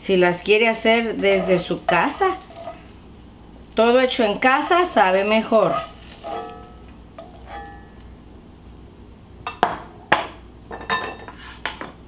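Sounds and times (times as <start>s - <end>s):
kitchen utensils clinking: 1.2s - 2.9s, 5.0s - 8.0s, 10.7s - 11.9s.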